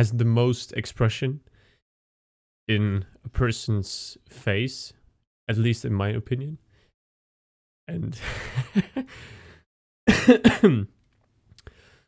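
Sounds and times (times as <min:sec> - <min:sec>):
breath: 0:01.5 - 0:01.8, 0:06.7 - 0:07.0, 0:09.1 - 0:09.7, 0:11.6 - 0:12.0
man laughing and coughing: 0:08.2 - 0:09.1, 0:10.1 - 0:11.0.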